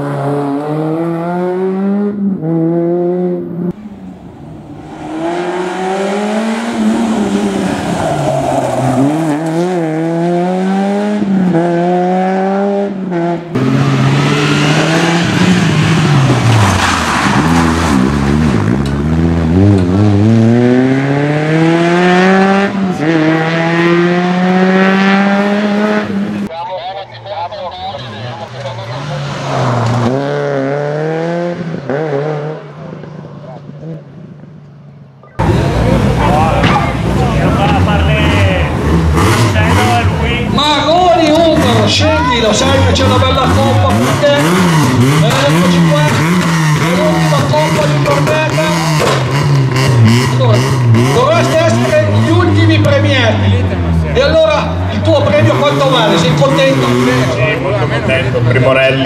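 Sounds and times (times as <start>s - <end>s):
rally car engine revving: 0.0s - 26.5s, 27.9s - 34.5s, 35.4s - 59.0s.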